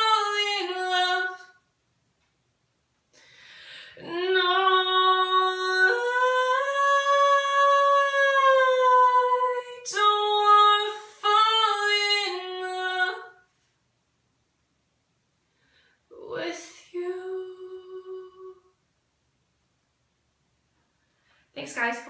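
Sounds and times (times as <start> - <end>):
woman singing a cappella: 0.0 - 1.7, 3.9 - 13.5, 16.1 - 18.8.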